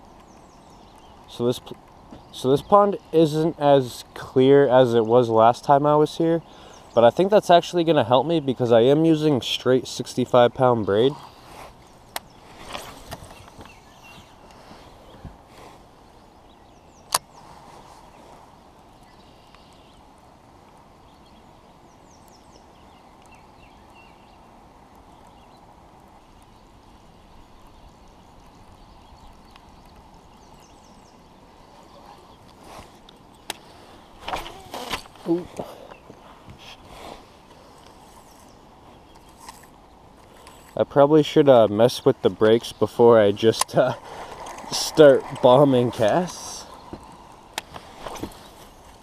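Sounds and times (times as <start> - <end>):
open-air background hiss: 0.0 - 49.0.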